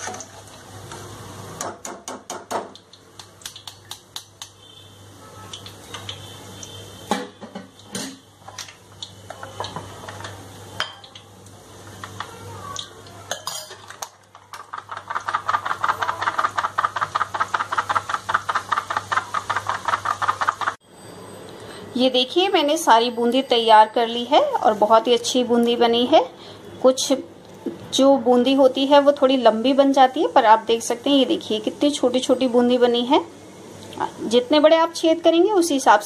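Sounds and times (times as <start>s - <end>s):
metal utensils clinking on pan: 13.3s - 14.1s
fast steady tapping: 14.4s - 20.8s.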